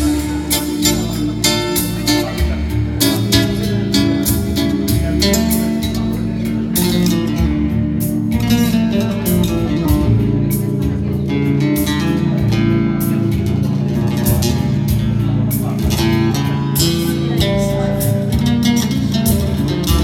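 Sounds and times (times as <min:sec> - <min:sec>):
classical guitar fingerstyle: 0:00.0 - 0:20.0
low keyboard chords: 0:00.0 - 0:20.0.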